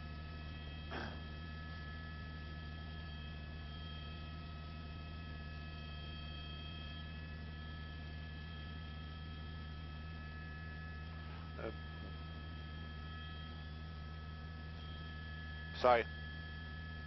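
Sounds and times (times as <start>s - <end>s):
faint high whining tones: 0.0s - 17.0s
low hum: 0.0s - 17.0s.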